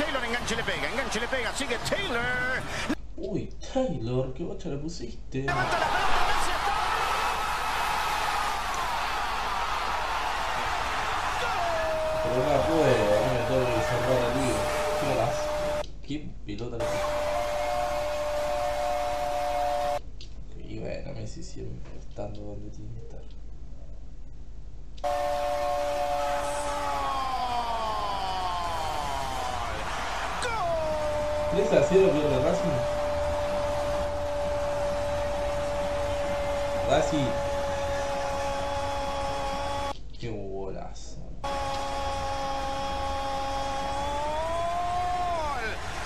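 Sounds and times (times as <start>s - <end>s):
man shouting drawn-out goal call: 11.3s - 15.8s, 16.8s - 20.0s, 25.0s - 40.0s, 41.4s - 46.0s
held tones sliding downward: 12.2s - 15.8s, 30.6s - 40.0s, 41.4s - 45.5s.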